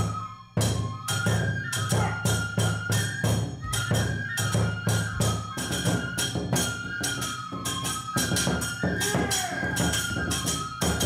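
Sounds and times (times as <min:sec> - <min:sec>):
bamboo flute melody: 0:00.0 - 0:11.0.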